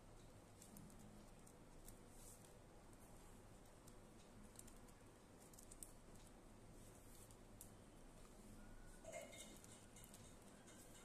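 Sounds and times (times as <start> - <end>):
plastic strips clicking in weave: 3.6 - 6.4, 9.3 - 11.0.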